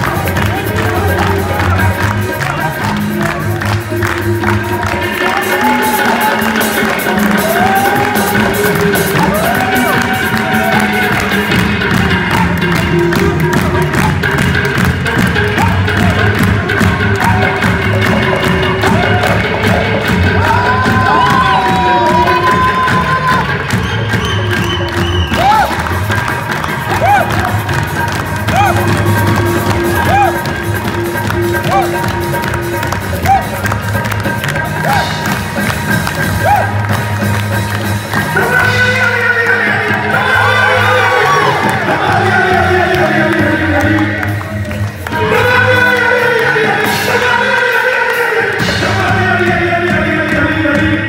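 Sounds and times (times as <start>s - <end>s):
person singing: 0.0s - 23.9s, 38.1s - 51.0s
crowd cheering: 0.0s - 50.9s
tabla and drums rhythm: 0.0s - 51.0s.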